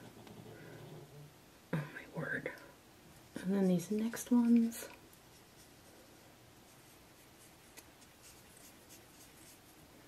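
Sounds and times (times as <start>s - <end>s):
fingertips rubbing powder: 6.6s - 9.9s.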